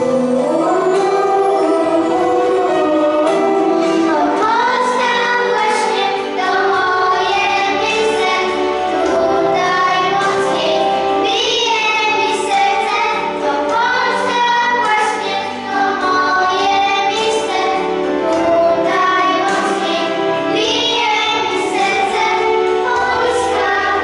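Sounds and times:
children singing together: 0:00.0 - 0:24.0
girls singing into microphones: 0:00.0 - 0:24.0.

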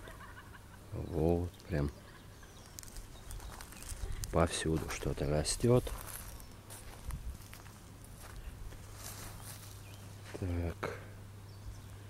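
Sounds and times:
footsteps on dry soil: 0:02.5 - 0:10.7.

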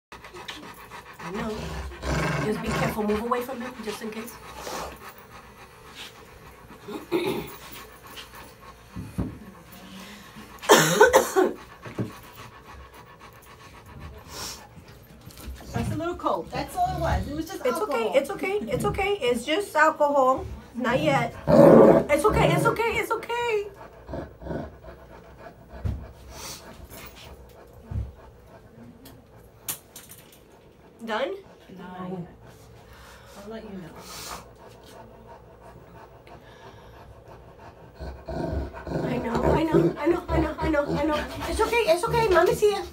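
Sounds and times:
dog panting: 0:00.1 - 0:42.9.

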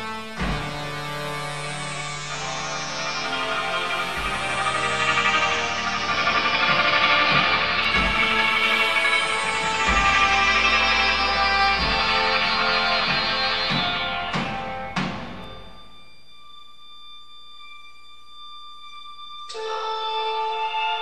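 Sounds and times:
ensemble sustained chord: 0:00.0 - 0:21.0
low drum hits: 0:07.4 - 0:10.7
faint held high tones: 0:13.7 - 0:21.0.

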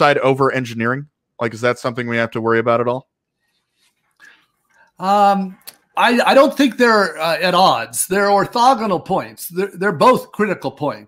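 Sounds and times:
person breathing faintly: 0:03.6 - 0:05.0.

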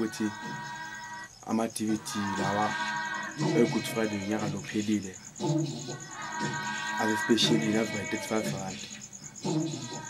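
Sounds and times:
man speaking: 0:00.0 - 0:00.4, 0:01.4 - 0:02.8, 0:03.4 - 0:05.2, 0:07.0 - 0:08.9
rapid high-pitched chirping: 0:00.0 - 0:10.0.

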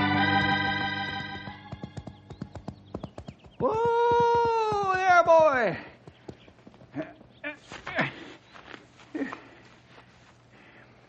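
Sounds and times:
horse hooves clopping: 0:00.0 - 0:08.0.

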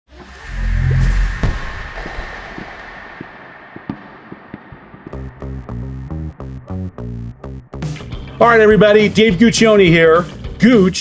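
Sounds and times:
heavy bass hit: 0:00.8 - 0:02.8, 0:04.8 - 0:08.8.

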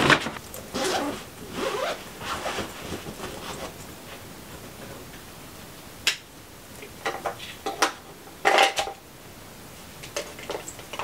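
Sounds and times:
bag zipper rasping: 0:00.7 - 0:02.7.

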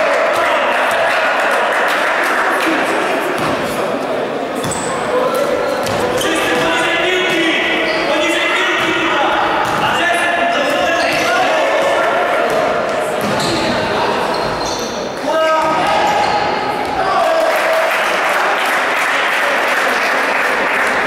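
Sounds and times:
players shouting: 0:00.0 - 0:03.7, 0:04.4 - 0:14.4, 0:15.2 - 0:20.1
gym hall noise: 0:00.0 - 0:21.0
ball bouncing on wooden court: 0:04.6 - 0:05.0, 0:08.8 - 0:10.0, 0:12.4 - 0:13.8.

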